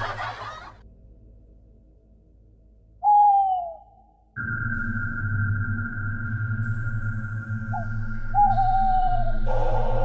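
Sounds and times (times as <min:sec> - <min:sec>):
eerie synthesizer drone: 0:00.8 - 0:10.0
owl-like hoot: 0:03.0 - 0:04.1, 0:07.7 - 0:10.0.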